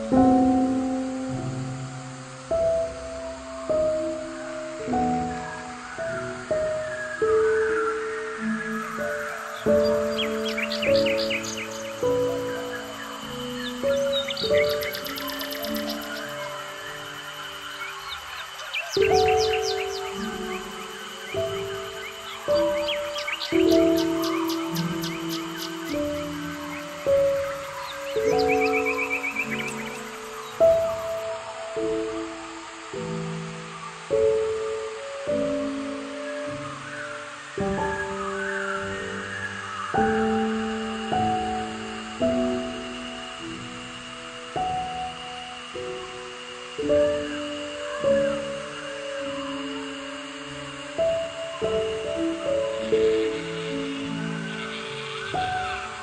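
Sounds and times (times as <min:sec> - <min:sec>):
calm slow instrumental music: 0:00.0 - 0:56.0
birds chirping and trilling: 0:03.1 - 0:56.0.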